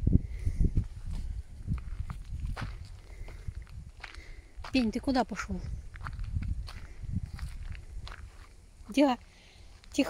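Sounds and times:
footsteps on gravel and grass: 0.8 - 10.0.

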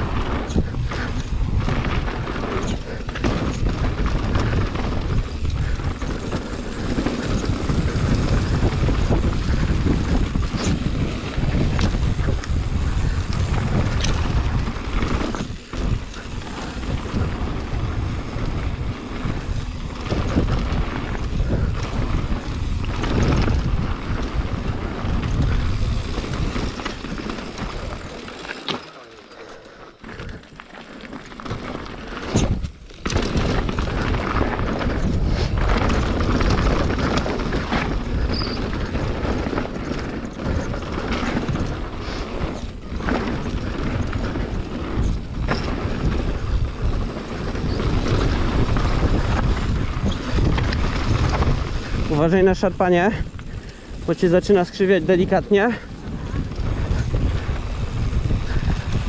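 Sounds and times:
wind buffeting microphone: 0.0 - 28.6, 31.4 - 59.0
bike knocks and rattles: 0.0 - 59.0
bike tyre rumble on gravel: 0.0 - 59.0.

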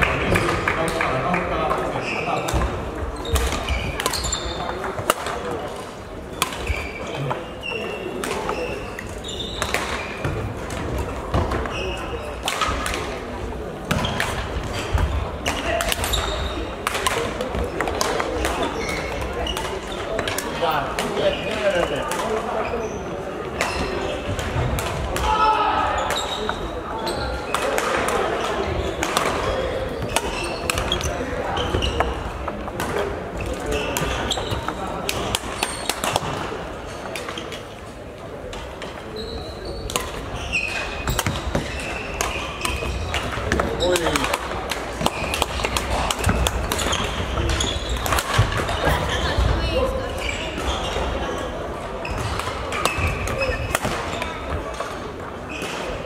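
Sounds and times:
rackets hitting shuttlecock: 2.4 - 5.8, 13.8 - 22.4, 32.8 - 36.5, 39.8 - 49.6, 52.1 - 56.0
babble of voices: 10.2 - 56.0.

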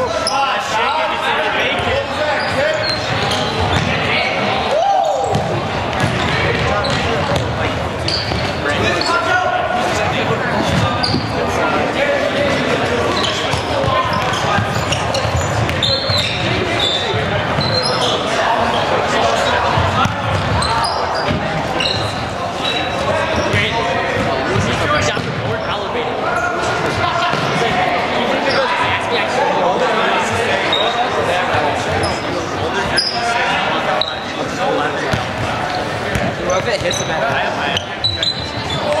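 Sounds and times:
sneakers squeaking: 0.0 - 0.7, 1.7 - 29.1, 30.4 - 39.0
players shouting: 0.0 - 7.2.

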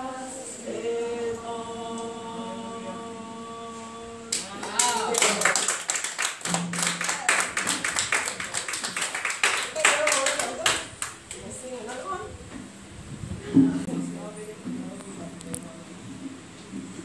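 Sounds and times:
congregation applauding: 4.3 - 11.4.

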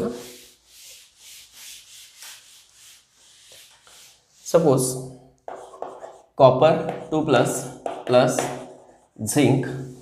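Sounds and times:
duster rubbing on chalkboard: 0.0 - 4.9, 5.5 - 10.0.

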